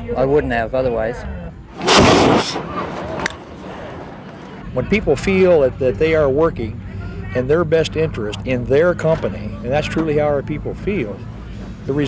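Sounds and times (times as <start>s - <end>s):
loud blast: 1.7s - 4.6s.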